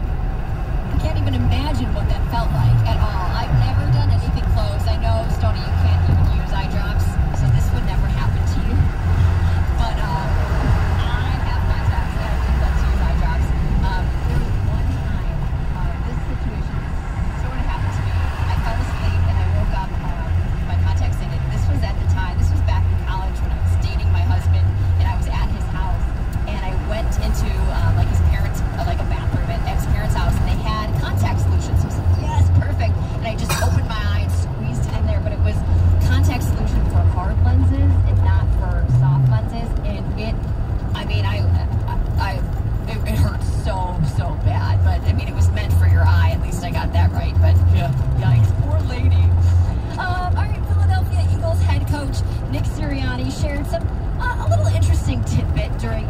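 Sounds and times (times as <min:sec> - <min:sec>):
car road and engine rumble: 0:00.0 - 0:56.0
muffled voices talking: 0:00.9 - 0:56.0.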